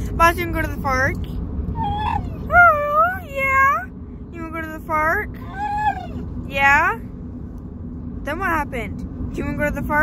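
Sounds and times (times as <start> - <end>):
moving car rumble: 0.0 - 10.0
dog howling vocalizations: 1.8 - 3.3, 5.4 - 6.2.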